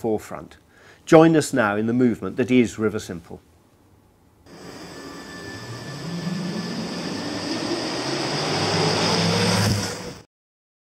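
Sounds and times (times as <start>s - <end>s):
car driving past: 5.1s - 10.3s.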